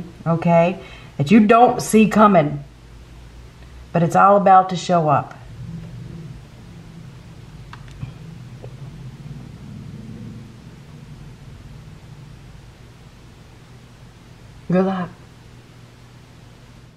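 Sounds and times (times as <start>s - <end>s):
low steady hum: 0.0s - 16.9s.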